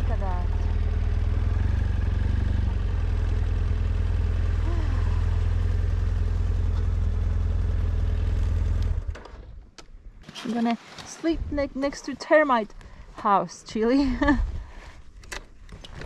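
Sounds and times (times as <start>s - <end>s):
motorcycle engine running: 0.0s - 9.1s.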